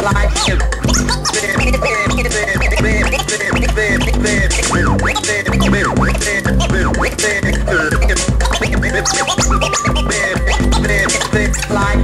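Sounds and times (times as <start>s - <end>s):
chopped vocal sample: 0.0s - 12.0s
hip hop beat: 0.0s - 12.0s
vinyl record scratching: 0.0s - 12.0s.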